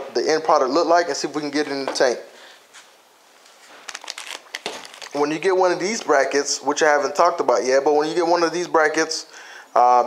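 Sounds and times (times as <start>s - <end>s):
plastic bags crinkling: 3.6s - 5.5s.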